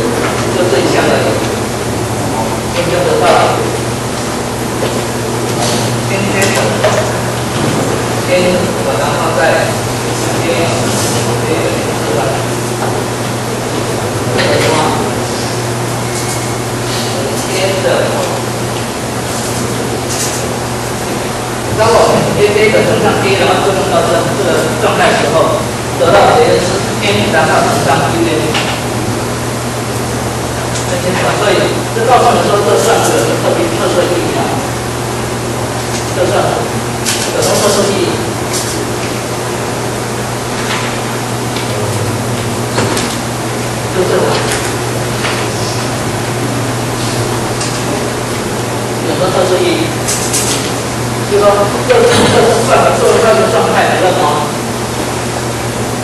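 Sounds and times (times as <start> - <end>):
low constant hum: 0.0 - 56.0.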